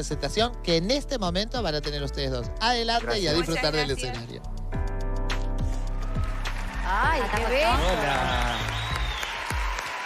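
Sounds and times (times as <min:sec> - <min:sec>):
background music: 0:00.0 - 0:10.0
audience applauding: 0:05.8 - 0:10.0.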